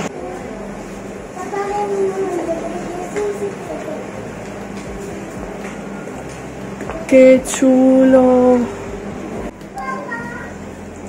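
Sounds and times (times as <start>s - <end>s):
faint voices: 0.0s - 10.9s
steady low hum: 0.0s - 11.0s.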